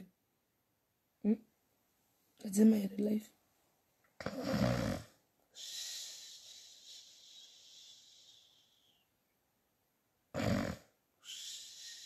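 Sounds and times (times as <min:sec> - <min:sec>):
woman snoring: 0:04.2 - 0:05.2, 0:10.3 - 0:10.9
hissing breath through teeth: 0:05.5 - 0:09.0, 0:10.4 - 0:12.0.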